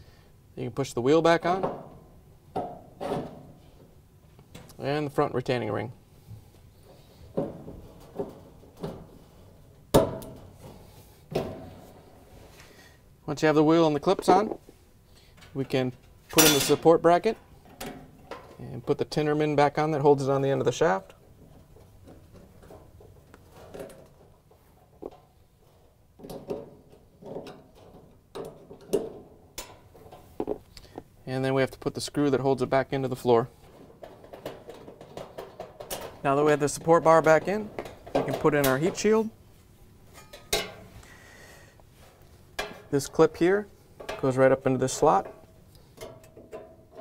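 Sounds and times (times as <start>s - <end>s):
sheet metal being handled: 15.4s - 18.6s, 33.4s - 39.4s, 40.0s - 41.0s, 41.9s - 47.0s.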